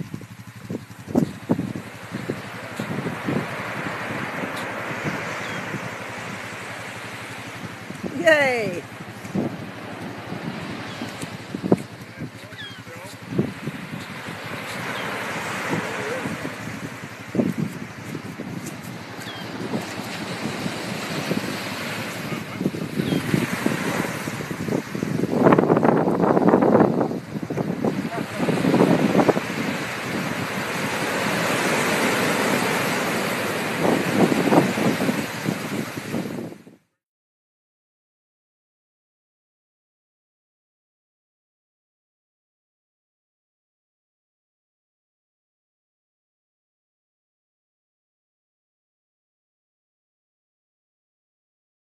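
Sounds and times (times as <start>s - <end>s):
sea surf breaking on beach: 0.0s - 36.6s
small waves on shore: 0.0s - 36.6s
wind buffeting microphone: 0.0s - 36.8s.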